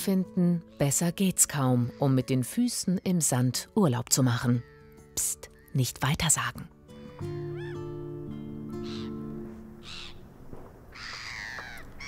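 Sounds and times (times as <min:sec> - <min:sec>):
soft background music: 0:00.0 - 0:10.6
gulls calling: 0:07.0 - 0:12.0.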